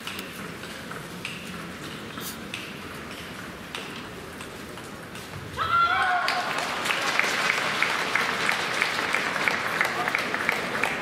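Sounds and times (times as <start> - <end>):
crowd applause and cheering: 5.9 - 11.0
rhythmic clapping: 6.3 - 11.0.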